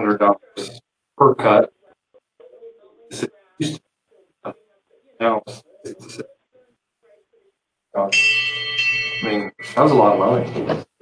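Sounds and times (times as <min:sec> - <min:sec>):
man's voice: 0:00.0 - 0:07.4, 0:09.2 - 0:11.0
bell-like ringing: 0:08.0 - 0:10.7.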